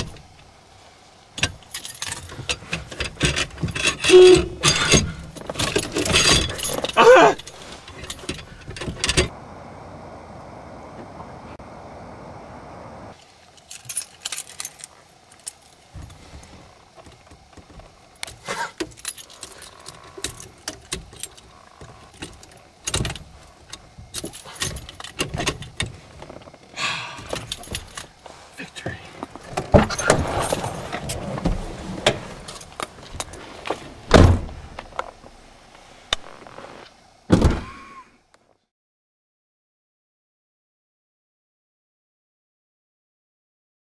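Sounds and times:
keys jangling: 1.4 - 9.3, 13.5 - 16.2, 18.2 - 25.9, 27.2 - 28.2.

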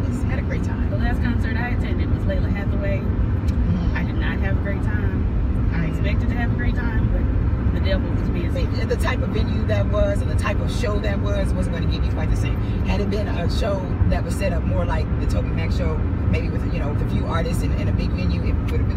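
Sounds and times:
car road and engine noise: 0.0 - 18.9.

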